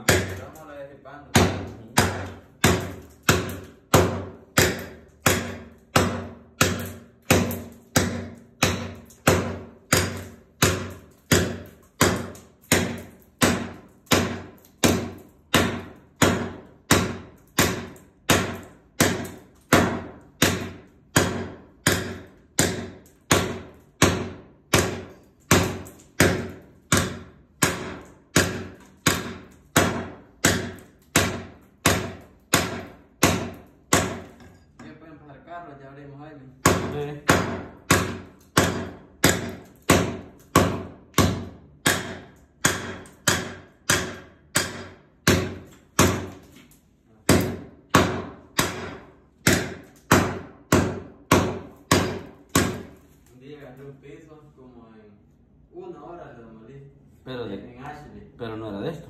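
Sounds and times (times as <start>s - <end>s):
hatchet striking floor tiles: 1.3s - 34.8s, 36.7s - 53.0s.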